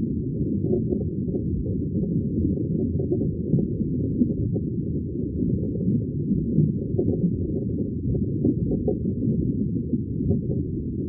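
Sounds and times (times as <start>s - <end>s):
underwater low rumble: 0.0s - 11.0s.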